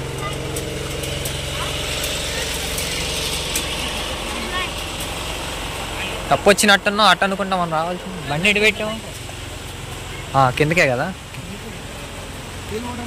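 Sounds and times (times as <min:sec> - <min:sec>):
distant voices: 0:00.0 - 0:13.0
engine running: 0:00.0 - 0:13.0
general background wash: 0:00.0 - 0:13.0.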